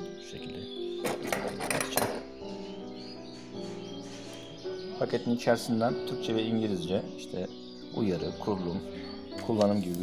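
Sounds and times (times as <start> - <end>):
background music: 0.0 - 10.0
metal clinking and rattling: 1.0 - 2.4, 3.3 - 4.6.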